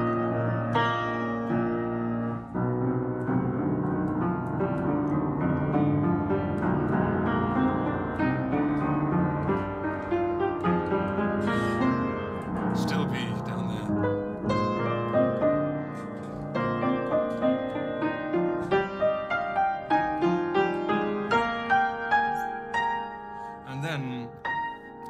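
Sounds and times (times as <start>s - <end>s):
upright piano chords: 0.0s - 25.0s.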